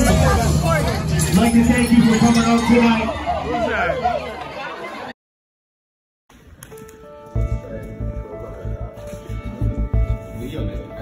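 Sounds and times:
voices chattering: 0.0s - 5.1s.

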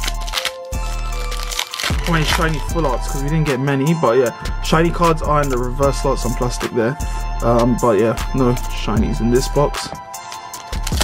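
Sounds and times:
foil wrapper crinkling and tearing: 0.0s - 3.1s, 10.3s - 11.0s
background music: 0.0s - 11.0s.

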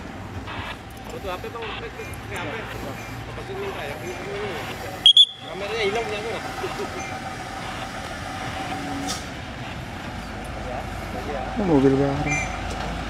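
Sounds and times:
truck engine rumble: 0.0s - 13.0s
shrill horn blasts: 4.4s - 5.7s, 7.0s - 9.3s.

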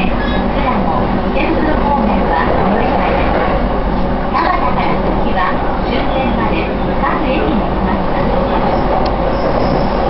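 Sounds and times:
train running noise: 0.0s - 10.0s
voices: 0.0s - 10.0s.

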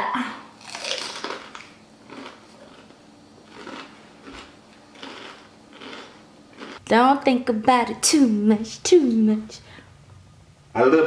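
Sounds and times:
chewing with soft crunches: 0.6s - 6.8s.

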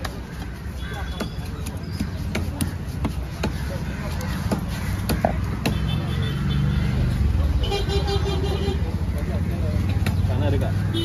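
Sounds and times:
voices: 0.0s - 11.0s
cleaver knocking on chopping block: 1.2s - 3.6s, 4.4s - 5.9s
vehicle horn: 7.6s - 8.9s.

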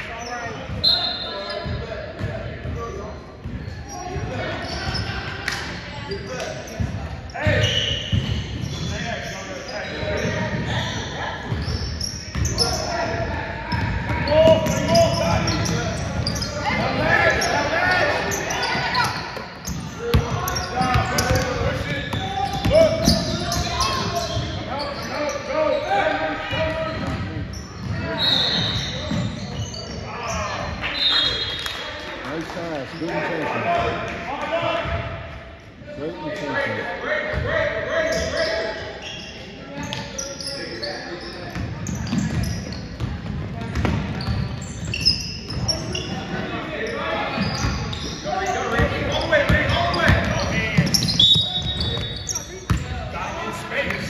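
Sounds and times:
voices and shouts echoing: 0.0s - 54.0s.

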